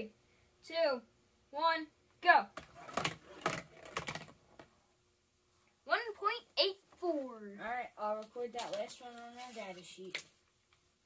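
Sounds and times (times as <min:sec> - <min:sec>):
child's voice: 0:05.9 - 0:10.2.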